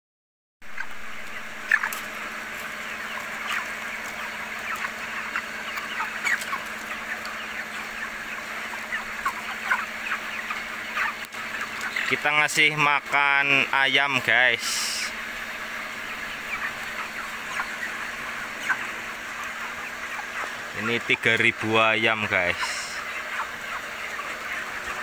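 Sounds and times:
chickens peeping and clucking: 0.6 - 25.0.

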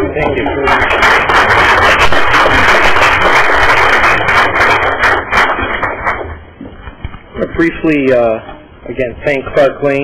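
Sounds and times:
small group clapping: 0.6 - 6.3.

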